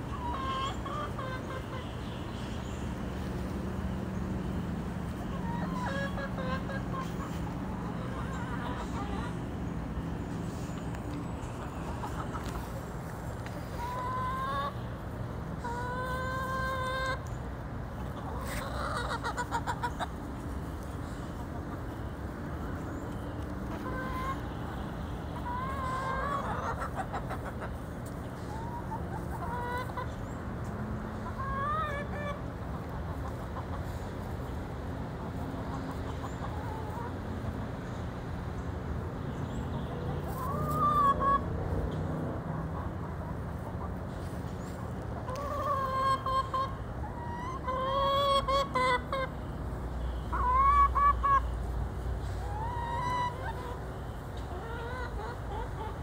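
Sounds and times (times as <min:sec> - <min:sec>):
chickens foraging: 0:00.0 - 0:56.0
hens clucking: 0:00.0 - 0:56.0.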